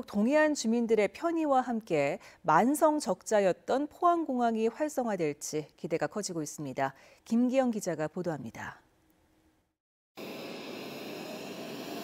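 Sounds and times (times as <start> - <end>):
jet engines running: 10.2 - 12.0.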